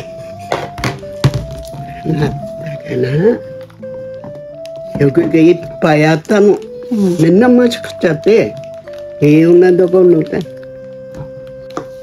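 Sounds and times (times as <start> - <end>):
background music: 0.0 - 12.0
objects knocking on wooden table: 0.5 - 1.8.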